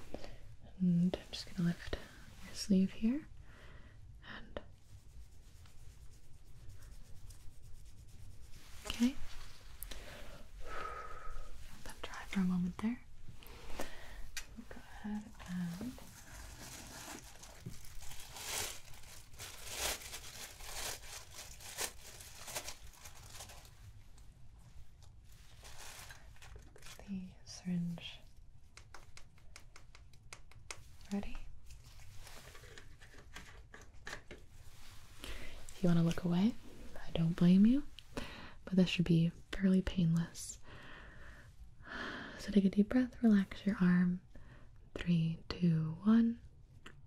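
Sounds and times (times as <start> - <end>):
packaging crinkling and tearing: 15.6 - 23.8, 25.6 - 27.0.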